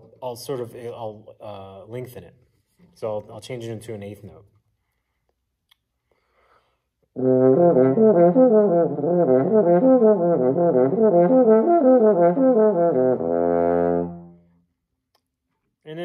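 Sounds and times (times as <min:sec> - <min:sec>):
french horn arpeggios: 0:07.2 - 0:14.4.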